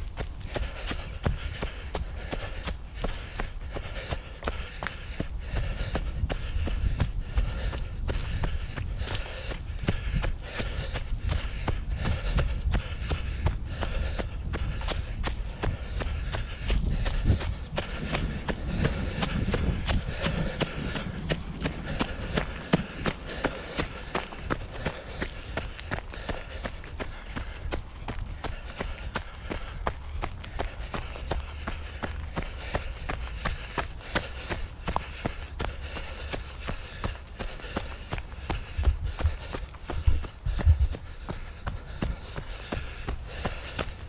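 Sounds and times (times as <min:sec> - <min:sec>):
running footsteps on a trail: 0:00.0 - 0:44.0.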